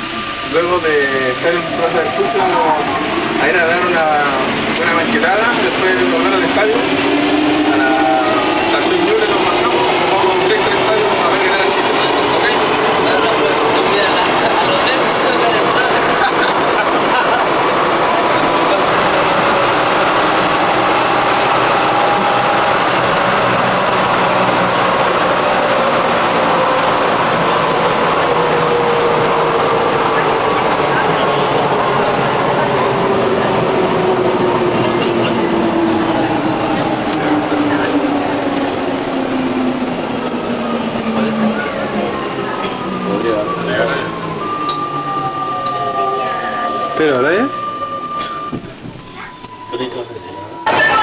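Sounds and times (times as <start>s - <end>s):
train running noise: 0.0s - 51.0s.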